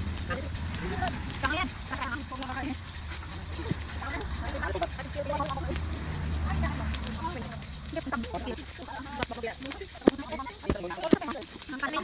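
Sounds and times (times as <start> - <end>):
people talking in background: 0.0 - 12.0
rice grains crackling in a wok: 0.0 - 12.0.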